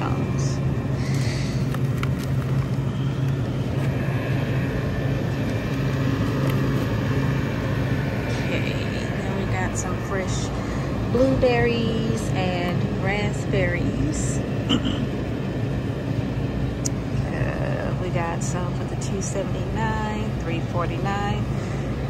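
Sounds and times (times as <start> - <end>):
refrigerated cases humming: 0.0 - 22.0.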